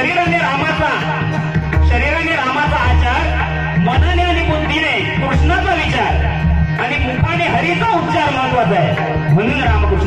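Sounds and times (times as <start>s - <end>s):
instruments playing: 0.0s - 10.0s.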